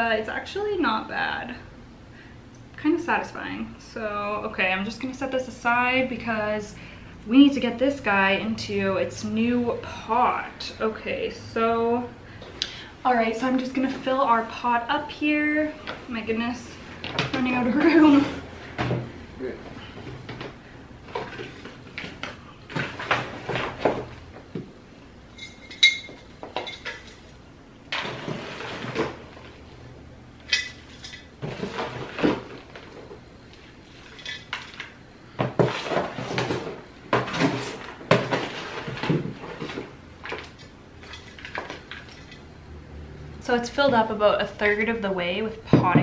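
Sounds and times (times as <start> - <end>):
scoop scraping plastic tub: 27.9 - 29.6, 31.4 - 33.1, 35.4 - 42.4
potting mix pouring: 27.9 - 29.7.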